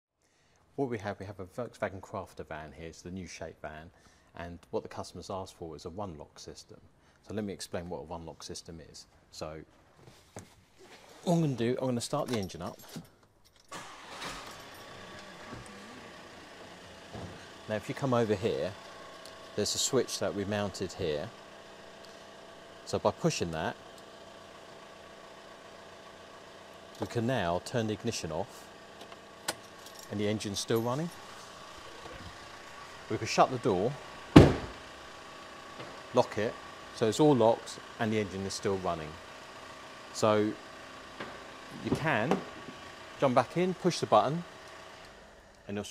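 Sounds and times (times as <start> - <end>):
diesel engine idling: 13.7 - 45.6
van door slamming: 34.3 - 34.8.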